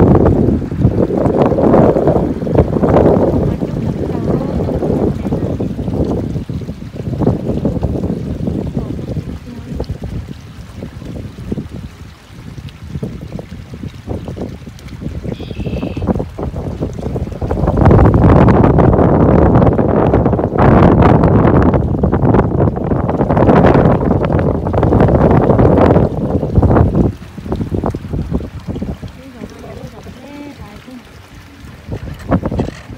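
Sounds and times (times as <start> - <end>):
wind buffeting microphone: 0.0 - 32.9.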